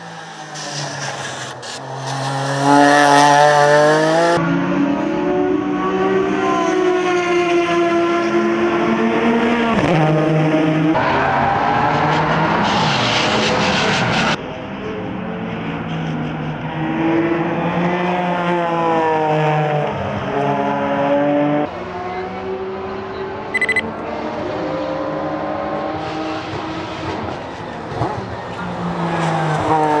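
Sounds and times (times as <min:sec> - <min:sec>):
race car engine at full throttle: 0:00.0 - 0:30.0
short triple beep: 0:23.6 - 0:23.8.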